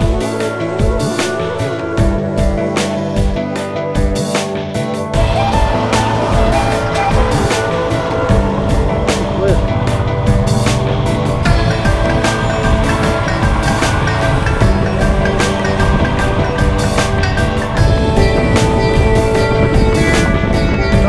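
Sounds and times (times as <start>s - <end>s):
background music: 0.0s - 21.0s
road and wind noise: 0.0s - 21.0s
motorcycle engine running: 5.1s - 21.0s.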